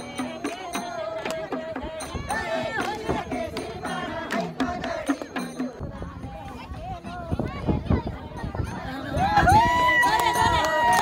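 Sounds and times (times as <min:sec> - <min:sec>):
hand drum beats: 0:00.0 - 0:11.0.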